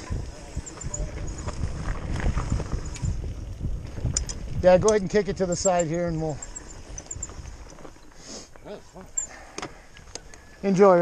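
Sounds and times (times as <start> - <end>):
bike knocking and rattling: 0.0 - 8.2
bike tyres rolling over dirt: 0.0 - 9.0.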